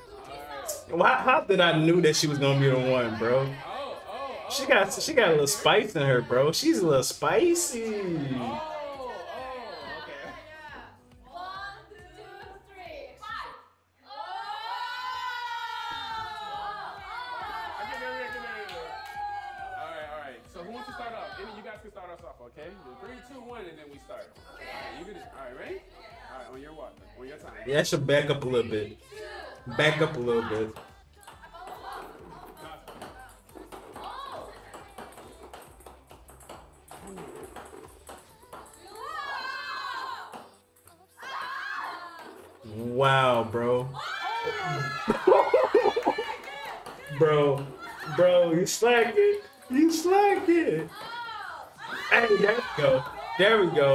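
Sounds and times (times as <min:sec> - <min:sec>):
excited voices: 0:00.0 - 0:21.7, 0:38.8 - 0:40.3, 0:41.2 - 0:53.9
background music: 0:00.0 - 0:53.9
women screaming: 0:13.4 - 0:19.9, 0:39.0 - 0:40.3, 0:41.2 - 0:42.4, 0:44.0 - 0:46.5, 0:51.0 - 0:53.4
ping-pong ball bouncing on table: 0:30.0 - 0:39.5, 0:40.3 - 0:42.7, 0:44.7 - 0:48.1, 0:50.4 - 0:51.2.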